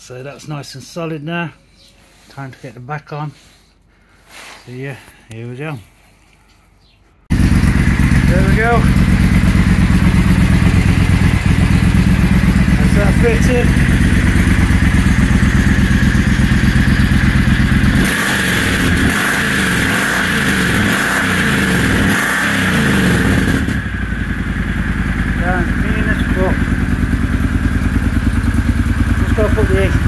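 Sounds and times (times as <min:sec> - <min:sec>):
motorcycle engine idling: 0:07.3 - 0:30.0.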